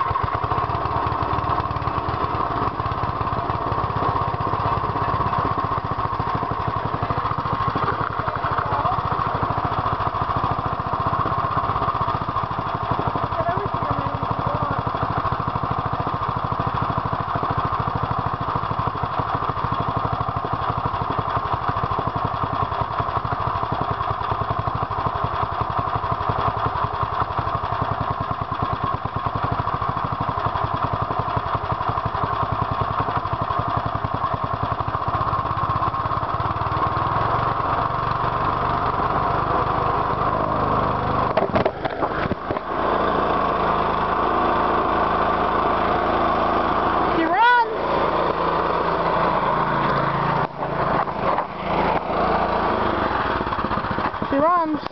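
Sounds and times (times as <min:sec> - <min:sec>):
lawn mower engine idling: 0:00.0 - 0:54.9.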